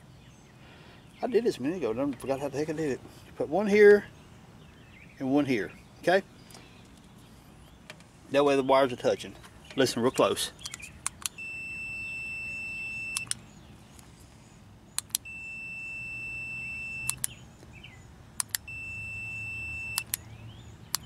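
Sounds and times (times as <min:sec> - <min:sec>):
multimeter continuity beep: 0:11.2 - 0:13.4, 0:15.0 - 0:17.4, 0:18.4 - 0:20.3
push-button switch clicks: 0:13.1 - 0:13.4, 0:15.0 - 0:15.3, 0:17.0 - 0:17.4, 0:18.4 - 0:18.7, 0:19.9 - 0:20.2.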